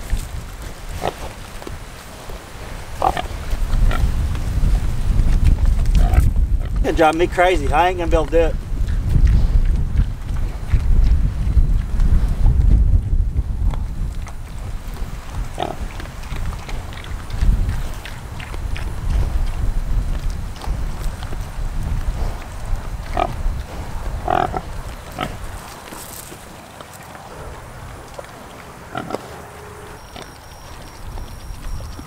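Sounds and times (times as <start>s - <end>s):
wind rumble on microphone: 0.0s - 32.0s
pigs grunting: 0.9s - 1.4s, 2.9s - 4.2s, 5.9s - 6.9s, 15.2s - 19.8s, 20.5s - 32.0s
pig calls: 24.2s - 25.5s, 26.8s - 32.0s.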